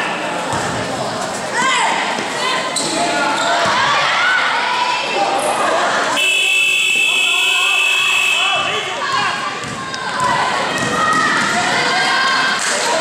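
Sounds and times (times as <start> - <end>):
people shouting: 6.0 - 13.0.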